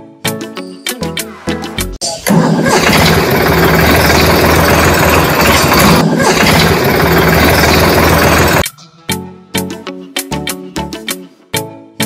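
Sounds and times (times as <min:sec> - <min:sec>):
engine starting and running: 0:02.0 - 0:08.6.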